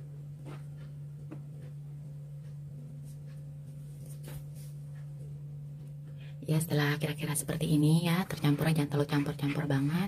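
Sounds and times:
steady low hum: 0.0 - 10.0
spatula scraping mixing bowl: 7.2 - 10.0.

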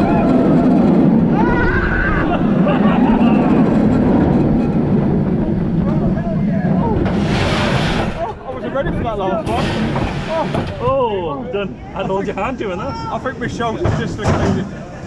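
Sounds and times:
roller coaster train rumbling: 0.0 - 15.0
wind: 0.0 - 15.0
riders' voices and laughter: 1.8 - 4.2, 8.1 - 15.0.

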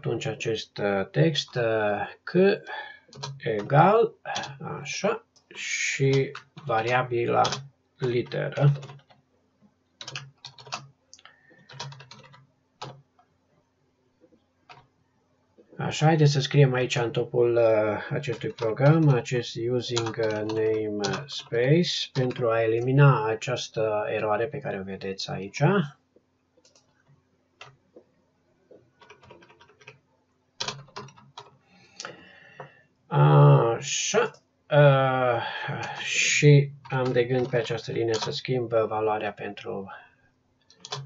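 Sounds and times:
typing on keyboard: 3.1 - 4.6, 6.1 - 9.2, 10.0 - 10.9, 11.5 - 13.0, 18.2 - 19.2, 19.9 - 22.4, 29.0 - 30.0, 30.6 - 31.6, 36.8 - 38.4, 40.7 - 41.0.

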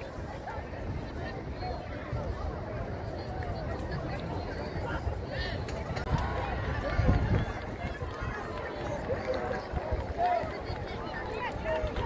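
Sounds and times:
distant chatter of young people: 0.0 - 12.0.

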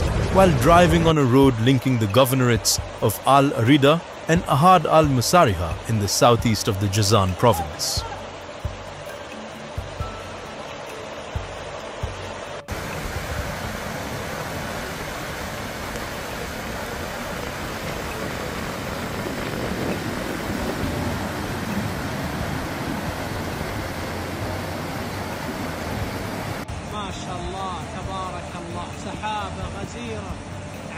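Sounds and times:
floodwater rushing: 0.0 - 30.9
quiet wash of water: 0.0 - 30.9.

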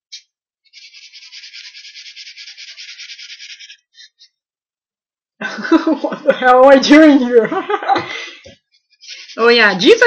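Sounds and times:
pen scratching on paper: 0.1 - 4.3.

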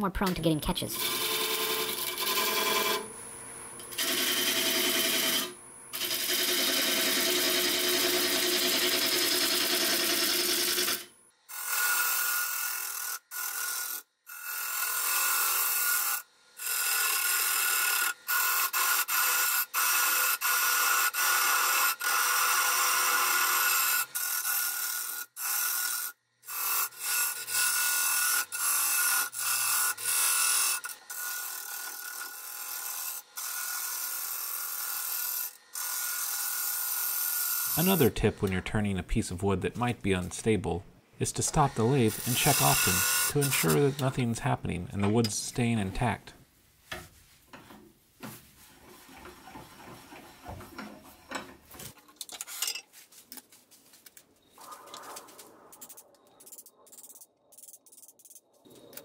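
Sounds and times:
lathe tool scraping wood: 0.9 - 39.0, 41.2 - 45.9, 48.6 - 52.0.

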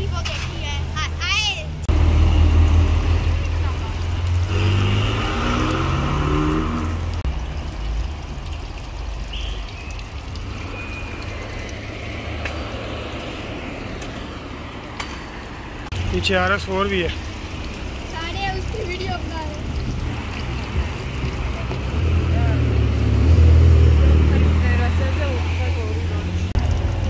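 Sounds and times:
traffic hum: 0.0 - 27.0.

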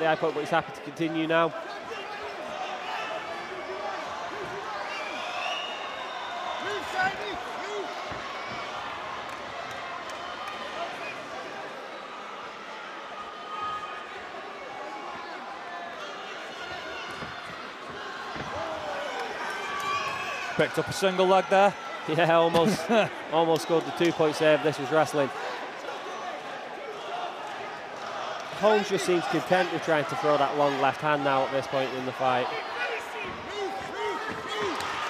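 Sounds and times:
crowd shouting: 0.0 - 35.0.

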